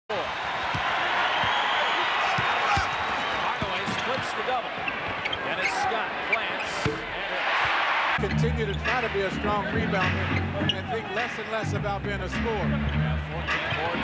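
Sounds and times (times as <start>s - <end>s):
crowd noise: 0.1s - 14.0s
sneakers squeaking: 0.7s - 7.8s, 10.2s - 11.0s.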